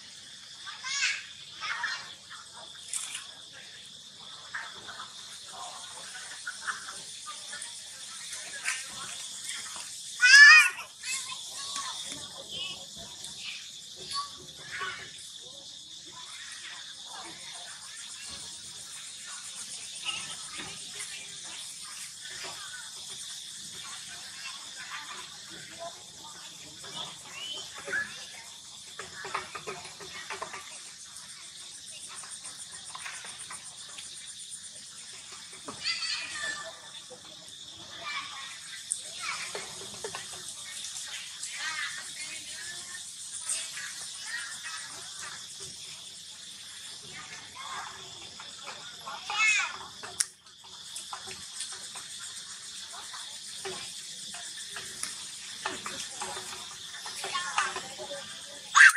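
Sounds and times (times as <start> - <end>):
high-pitched insect chorus: 0.0 - 58.9.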